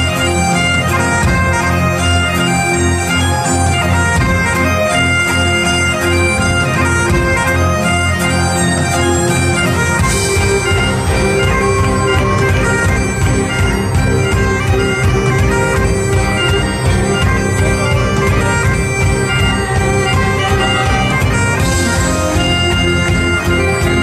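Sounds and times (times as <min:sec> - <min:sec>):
accordion: 0:00.0 - 0:24.0
bagpipes playing melody with drone: 0:00.0 - 0:24.0
electric guitar: 0:00.0 - 0:24.0
fiddle: 0:00.0 - 0:24.0
steady drum beat: 0:06.3 - 0:24.0.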